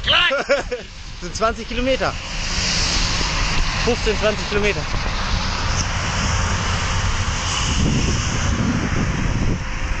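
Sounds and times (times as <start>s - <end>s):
wind rushing over microphone: 0.0s - 10.0s.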